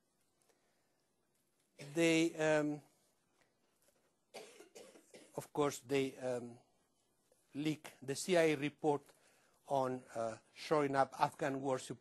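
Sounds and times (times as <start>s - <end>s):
faint cough: 1.8s - 2.2s, 4.3s - 5.5s.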